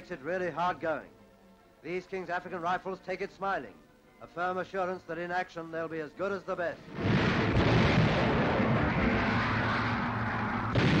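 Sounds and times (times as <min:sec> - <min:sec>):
explosions: 0:06.9 - 0:11.0
gunfire: 0:06.9 - 0:11.0.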